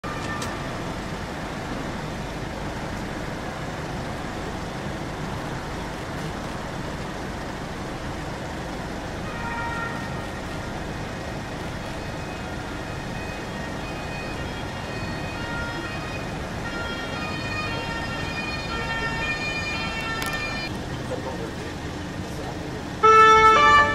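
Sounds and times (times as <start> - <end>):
city road traffic: 0.0 - 23.9
faint siren tones: 9.4 - 20.7.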